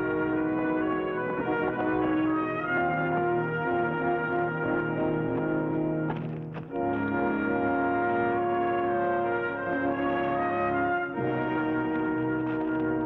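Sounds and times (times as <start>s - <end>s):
orchestral score with brass: 0.0s - 13.0s.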